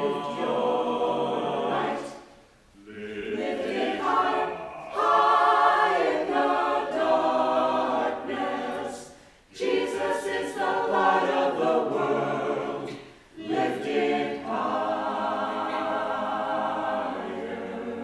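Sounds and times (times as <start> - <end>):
church choir singing: 0.0 - 18.0.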